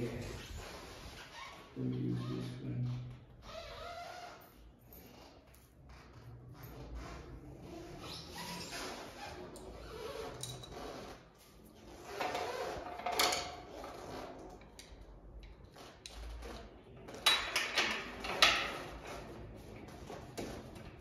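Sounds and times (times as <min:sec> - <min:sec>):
door hardware clicks and scrapes: 0:12.1 - 0:19.4.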